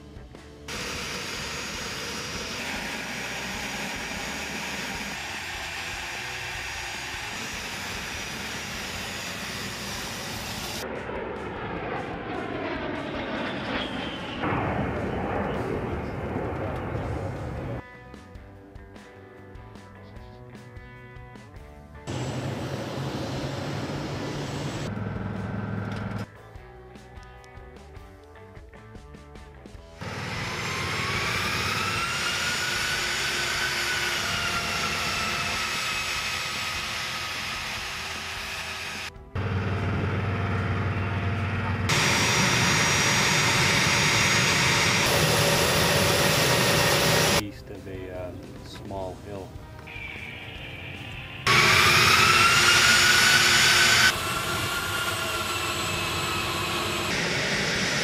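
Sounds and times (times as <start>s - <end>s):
jet engine whine: 0.7s - 17.8s, 22.1s - 26.3s, 30.0s - 47.4s, 49.9s - 58.0s
loud jet engine noise: 0.7s - 17.8s, 22.1s - 26.3s, 30.0s - 47.4s, 49.9s - 58.0s.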